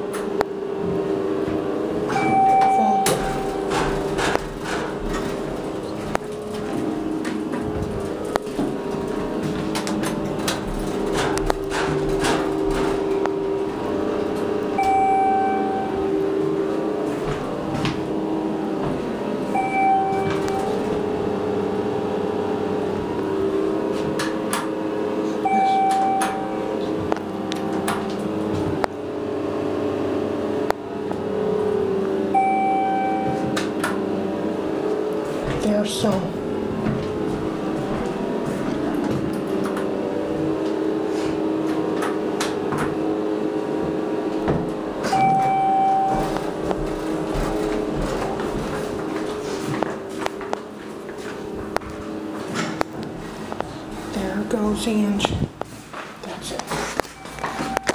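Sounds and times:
elevator motor hum: 0:00.0 - 0:57.9
short electronic beep: 0:02.1 - 0:03.7, 0:14.8 - 0:16.1, 0:19.5 - 0:20.8, 0:25.4 - 0:26.6, 0:32.4 - 0:33.6, 0:45.1 - 0:46.4, 0:57.2 - 0:57.9
clicks and knocks: 0:02.1 - 0:13.4.

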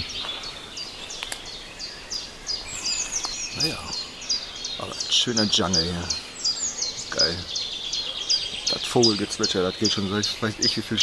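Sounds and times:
songbirds twittering: 0:00.0 - 0:11.0.

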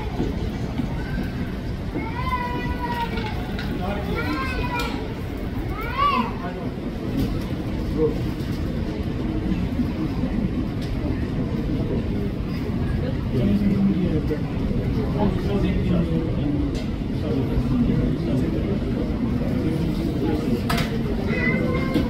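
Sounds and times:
child's voice: 0:00.8 - 0:06.4, 0:21.1 - 0:22.0.

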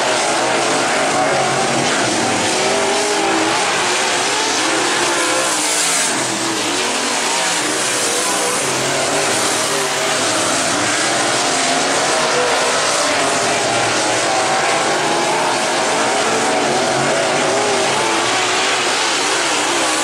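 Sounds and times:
race car engines running hard: 0:00.0 - 0:20.0.

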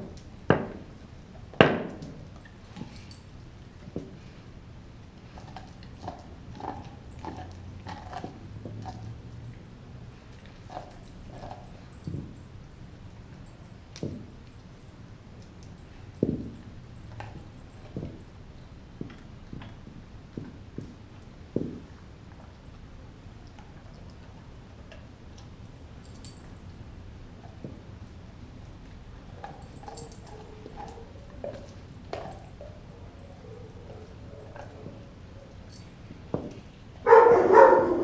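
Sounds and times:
dog gnawing a bone: 0:00.0 - 0:37.7.

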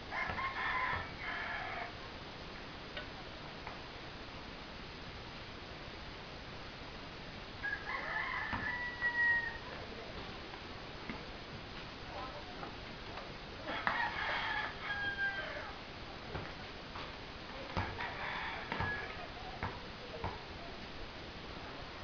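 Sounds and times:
rooster crowing: 0:00.1 - 0:02.0, 0:07.6 - 0:09.8, 0:13.6 - 0:15.8, 0:17.8 - 0:19.3.

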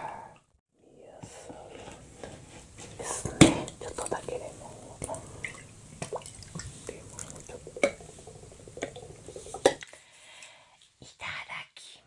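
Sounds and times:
juice dripping: 0:05.0 - 0:10.0.

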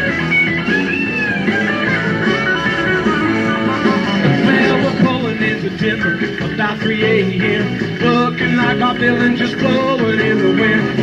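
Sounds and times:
live rock band playing: 0:00.0 - 0:11.0
lead guitar line bending pitch: 0:00.3 - 0:07.5.

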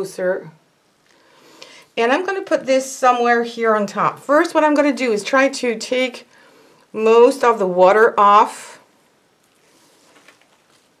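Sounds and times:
paper towel rustling: 0:09.5 - 0:11.0.

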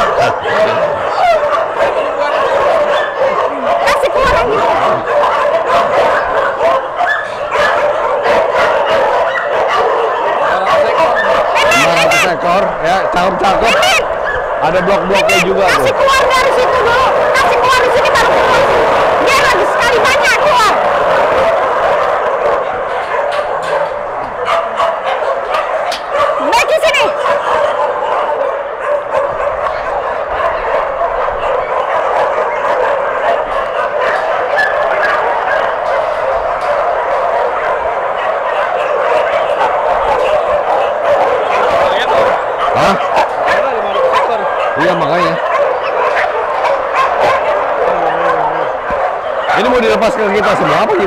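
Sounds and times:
pack of dogs barking: 0:00.0 - 0:51.0.

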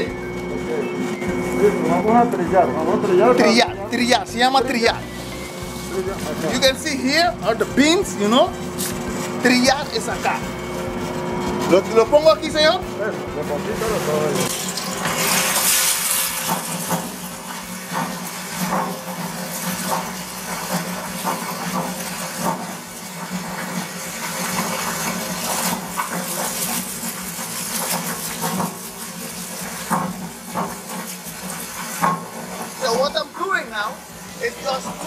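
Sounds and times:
steady low hum: 0:00.0 - 0:15.6
coffee beans pouring and rattling: 0:03.4 - 0:35.0.

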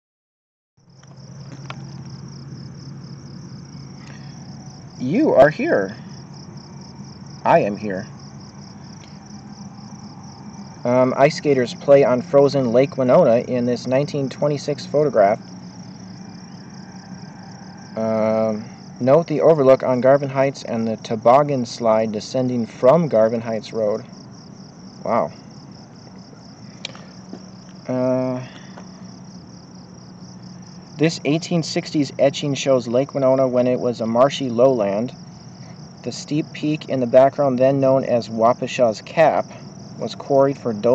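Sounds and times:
insects chirping: 0:00.8 - 0:40.9
steady low hum: 0:00.9 - 0:40.9.

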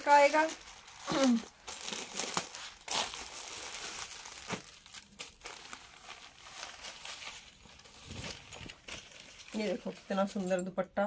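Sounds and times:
fabric rustling and crinkling: 0:00.0 - 0:10.6.

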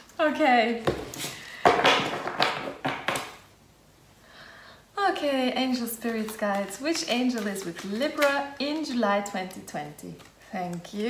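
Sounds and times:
cards rustling: 0:05.7 - 0:11.0.

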